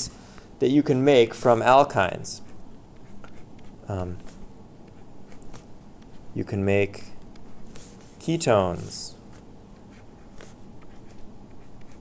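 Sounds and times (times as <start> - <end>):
faint steady hum: 0.0 - 12.0
stylus scratching on tablet screen: 2.2 - 6.4, 7.4 - 12.0.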